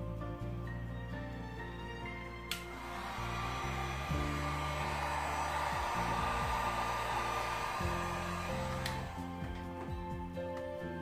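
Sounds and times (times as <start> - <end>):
hot-air blower whooshing: 2.6 - 9.6.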